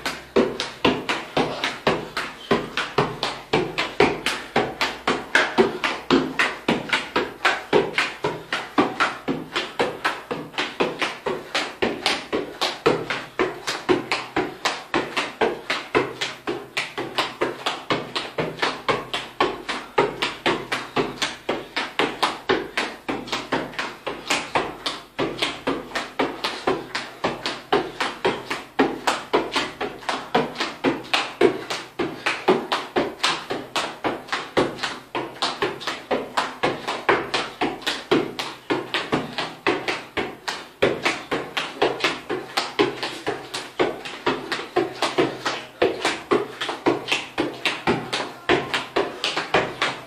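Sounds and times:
foot tapping football: 0.0s - 50.0s.

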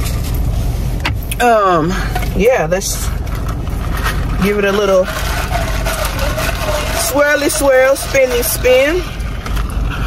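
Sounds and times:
car engine idling: 0.0s - 10.0s
ice rattling in a plastic cup: 2.8s - 9.9s.

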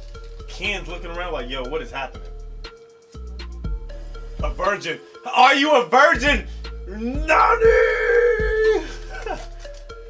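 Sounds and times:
music: 0.0s - 10.0s
man shouting: 5.3s - 9.4s.

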